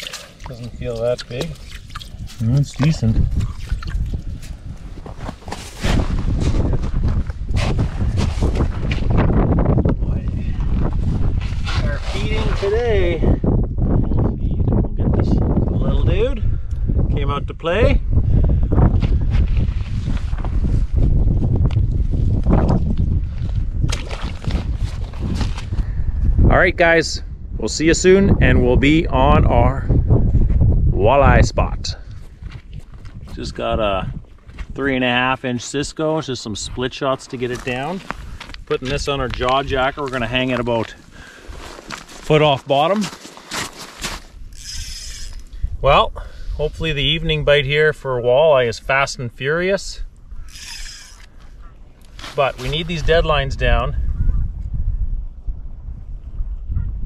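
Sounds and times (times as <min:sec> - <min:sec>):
wind rumbling on microphone: 0:00.0 - 0:42.7, 0:43.6 - 0:57.0
knocks and rustles on snowy ice: 0:41.7 - 0:44.3
fishing reel whirring: 0:44.5 - 0:45.6, 0:50.4 - 0:51.4.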